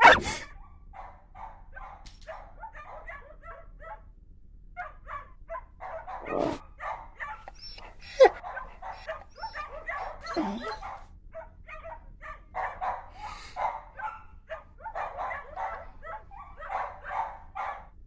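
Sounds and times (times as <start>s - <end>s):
dog sharp yelp: 0.0s - 4.0s, 4.8s - 17.8s
dogs barking and yipping: 0.0s - 4.0s, 4.8s - 18.0s
dogs whimpering: 6.1s - 6.6s, 7.2s - 11.0s.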